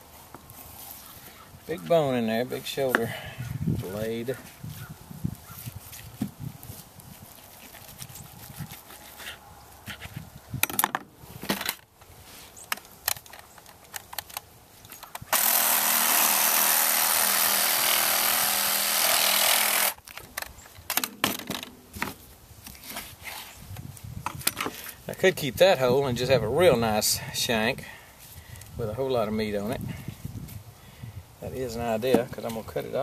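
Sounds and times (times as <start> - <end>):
reciprocating saw cutting bone: 15.4 - 20.0.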